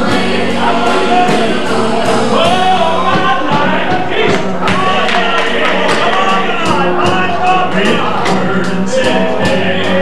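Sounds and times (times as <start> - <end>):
group singing in harmony: 0.0 - 10.0
steady beat: 0.0 - 10.0.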